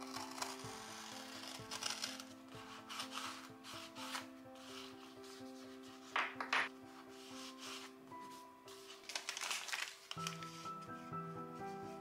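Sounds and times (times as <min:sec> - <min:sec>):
craft knife cutting paper: 0:00.0 - 0:05.1.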